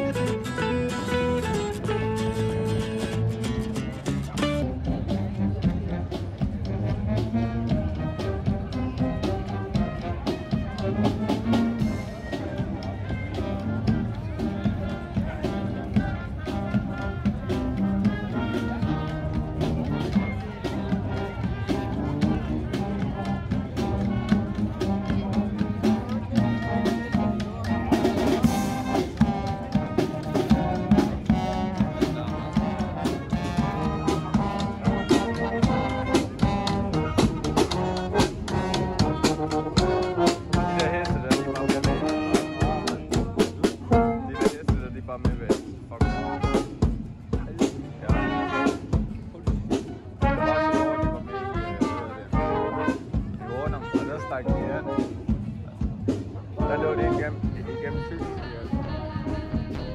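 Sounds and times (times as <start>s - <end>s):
marching band playing brass: 0.0s - 59.9s.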